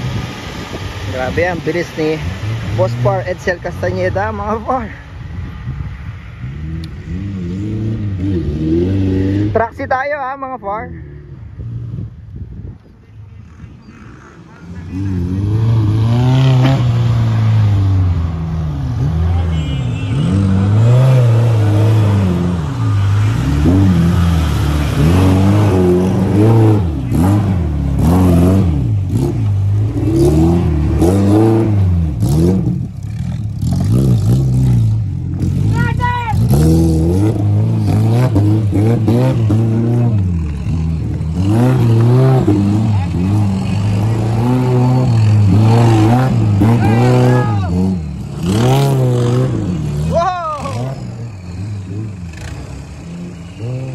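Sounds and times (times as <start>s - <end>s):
car engine revving under load: 13.7s - 53.9s.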